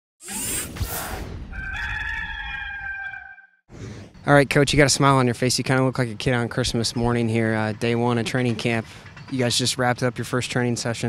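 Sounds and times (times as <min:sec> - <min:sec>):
whoosh: 0:00.2 - 0:01.5
rooster crowing: 0:01.5 - 0:03.6.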